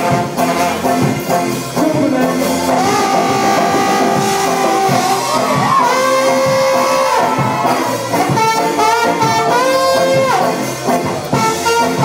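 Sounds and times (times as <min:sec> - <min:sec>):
saxophone and trombone long notes: 0:00.0 - 0:12.0
ska band playing: 0:00.0 - 0:12.0.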